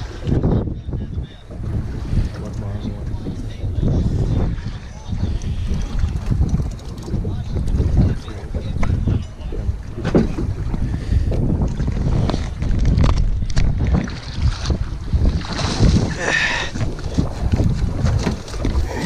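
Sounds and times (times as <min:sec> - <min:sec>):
water slapping boat hull: 0:00.0 - 0:19.0
wind buffeting microphone: 0:00.0 - 0:19.0.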